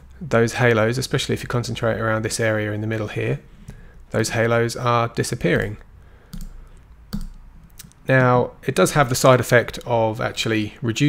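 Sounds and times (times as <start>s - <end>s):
computer mouse clicks: 6.3s - 8.0s.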